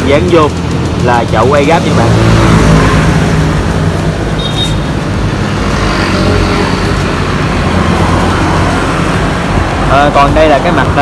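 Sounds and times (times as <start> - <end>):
constant rushing noise: 0.0 - 11.0
engine humming: 0.0 - 11.0.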